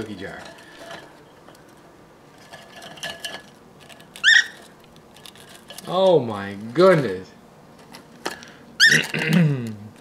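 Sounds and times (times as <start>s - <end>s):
bird scratching and clicking in jar: 2.4s - 5.9s
cockatiel chirp: 4.2s - 4.6s.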